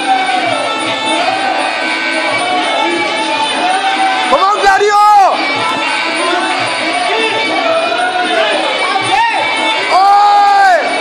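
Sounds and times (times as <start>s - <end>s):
ringside music ensemble: 0.0s - 11.0s.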